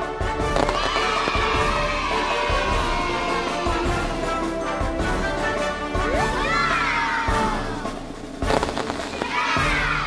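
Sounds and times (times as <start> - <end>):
music: 0.0 - 10.0
confetti popper pop and crackles: 0.5 - 1.7, 8.4 - 9.5.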